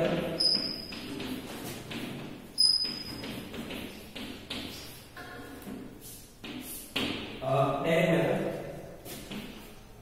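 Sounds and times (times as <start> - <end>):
chalk scratching on blackboard: 0.4 - 7.1.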